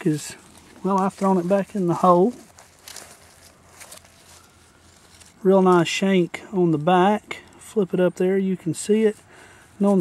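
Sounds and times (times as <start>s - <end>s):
light rustles: 0.0s - 5.8s
low steady hum: 0.0s - 10.0s.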